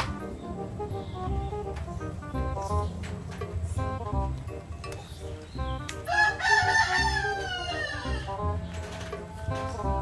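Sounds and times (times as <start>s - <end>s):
background music with low beat: 0.0s - 10.0s
rooster crowing: 6.1s - 8.4s.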